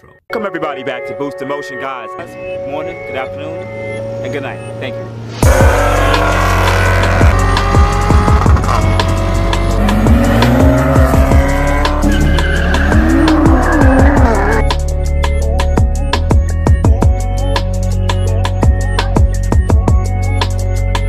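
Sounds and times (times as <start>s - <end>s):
music with heavy bass: 1.7s - 21.0s
car engines revving: 2.2s - 14.9s
tires squealing: 3.4s - 14.8s.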